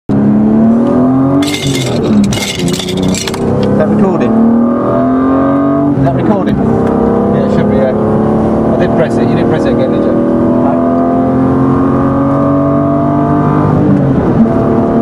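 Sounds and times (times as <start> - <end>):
car engine revving under throttle: 0.1 - 1.4, 3.1 - 15.0.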